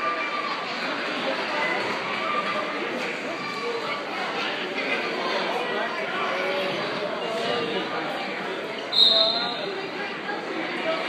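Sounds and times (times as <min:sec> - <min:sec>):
spectators chattering: 0:00.0 - 0:11.0
referee's whistle blast: 0:08.9 - 0:09.8.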